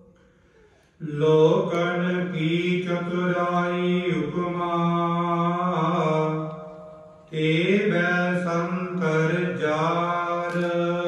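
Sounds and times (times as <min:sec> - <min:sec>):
man singing devotional phrase: 0:01.0 - 0:11.0.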